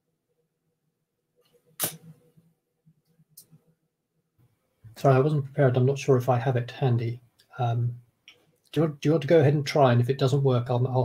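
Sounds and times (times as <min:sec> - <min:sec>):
short sharp click: 0:01.8 - 0:02.1.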